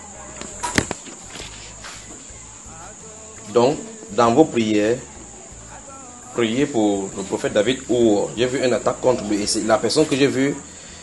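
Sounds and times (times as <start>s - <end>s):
high-pitched hiss: 0.0s - 11.0s.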